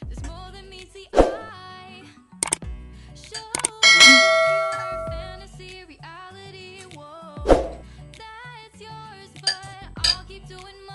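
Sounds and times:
background music: 0.0s - 10.9s
bright bell ding: 3.8s - 5.3s.

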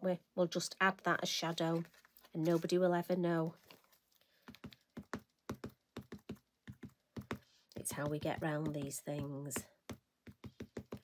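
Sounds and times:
ink pad tapping on rubber stamp: 4.4s - 11.0s.

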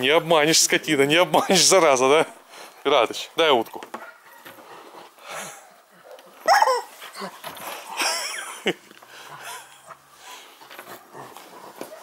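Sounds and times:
dog yelping: 5.5s - 7.4s
dog whimpering: 6.4s - 7.4s.

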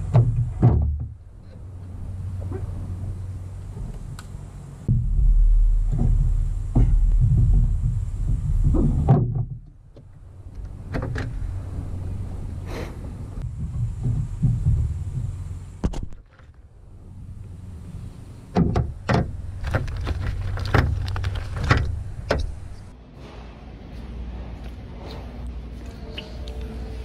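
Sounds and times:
low steady rumble: 0.0s - 27.0s.

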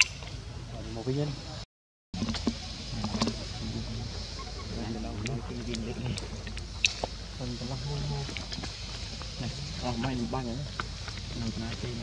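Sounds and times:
steady low hum: 2.2s - 12.0s
indistinct voices talking: 2.4s - 12.0s.

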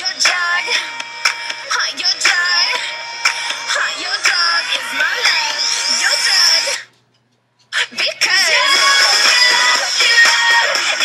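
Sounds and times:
music: 0.0s - 7.1s, 7.8s - 11.0s
young voices singing or talking: 7.8s - 11.0s.

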